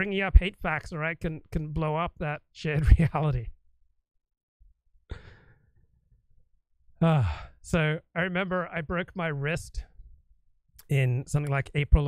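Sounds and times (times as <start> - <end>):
man sighing: 5.1 - 5.7, 7.0 - 7.6.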